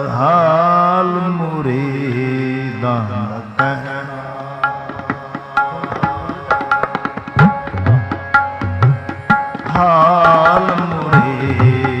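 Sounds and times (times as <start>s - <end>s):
harmonium: 0.0s - 12.0s
tabla strokes: 3.5s - 12.0s
person singing: 9.6s - 12.0s.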